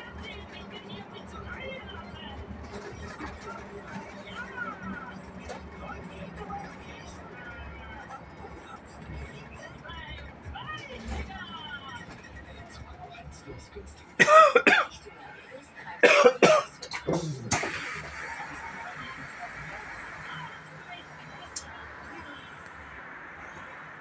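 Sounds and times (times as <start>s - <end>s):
bus engine drone: 0.0s - 24.0s
radio music with voice: 0.0s - 24.0s.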